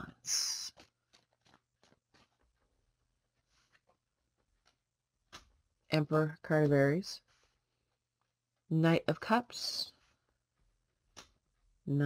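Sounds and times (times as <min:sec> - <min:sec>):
tarot cards shuffled by hand: 0:00.0 - 0:06.6.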